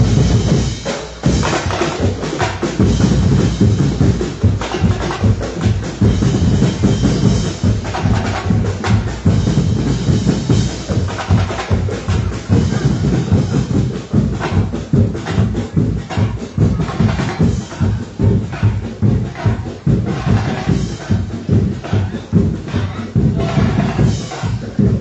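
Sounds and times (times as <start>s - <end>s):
music with heavy drum beat: 0.0s - 25.0s.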